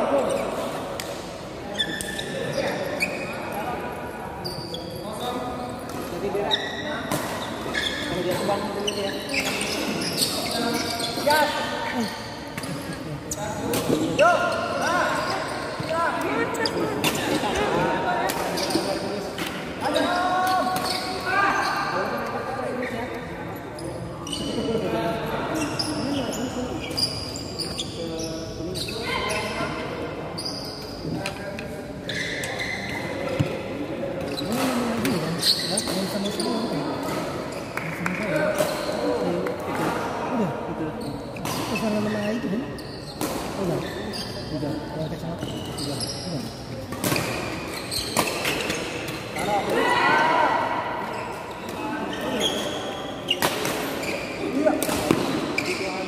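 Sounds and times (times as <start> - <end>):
voices calling in a hall: 0.0 - 56.0.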